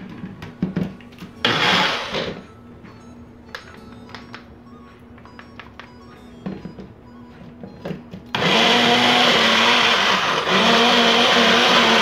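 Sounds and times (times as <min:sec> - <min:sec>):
blender running: 0:01.4 - 0:02.4, 0:08.3 - 0:12.0.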